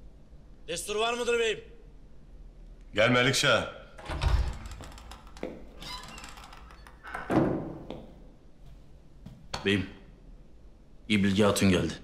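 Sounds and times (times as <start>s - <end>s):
soft knocks and rustles: 4.0s - 9.7s.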